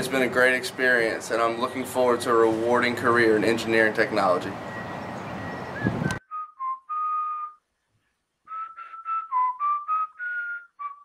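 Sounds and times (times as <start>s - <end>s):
outdoor background hiss: 0.0s - 6.2s, 6.8s - 10.8s
whistled tune: 5.4s - 7.7s, 8.4s - 11.0s.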